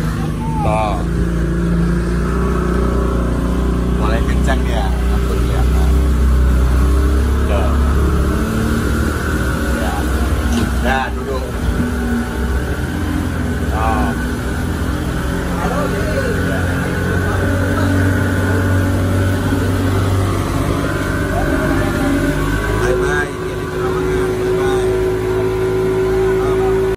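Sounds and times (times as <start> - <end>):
outboard motor drone: 0.0 - 26.9
wind: 0.0 - 26.9.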